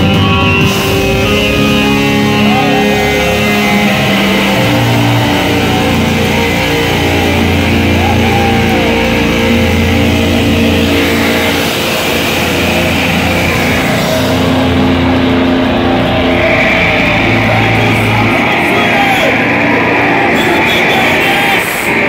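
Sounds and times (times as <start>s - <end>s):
distorted electric guitar chords: 0.0s - 22.0s
heavy metal band playing live: 0.0s - 22.0s.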